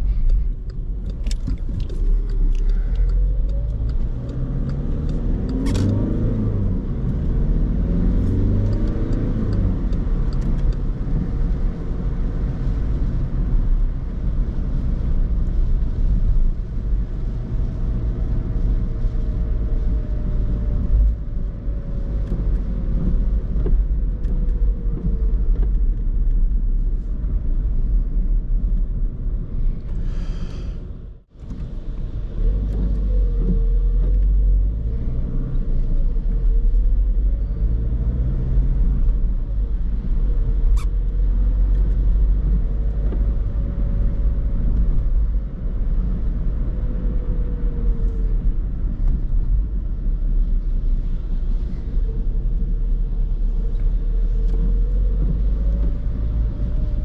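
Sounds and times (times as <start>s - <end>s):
diesel car engine: 0.0s - 57.0s
road and tyre rumble: 0.0s - 57.0s.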